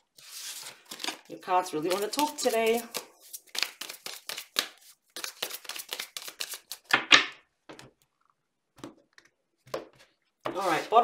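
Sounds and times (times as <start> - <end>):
cards being shuffled: 0.2 - 7.2, 10.5 - 11.0.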